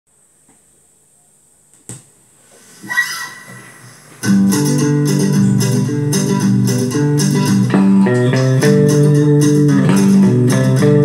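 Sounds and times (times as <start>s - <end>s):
faint steady hiss: 0.1s - 7.7s.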